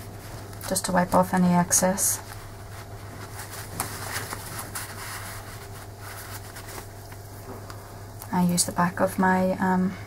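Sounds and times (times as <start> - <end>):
kitchen roll rustling on paper: 0.0 - 7.2
steady low hum: 0.0 - 10.0.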